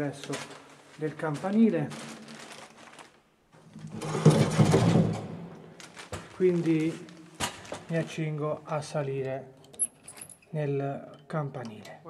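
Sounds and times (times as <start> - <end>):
door grille rattling: 3.9 - 5.3.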